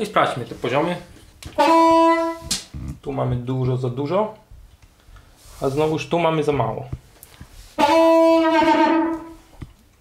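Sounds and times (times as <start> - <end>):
harmonica note held: 1.6 - 2.6, 7.8 - 9.4.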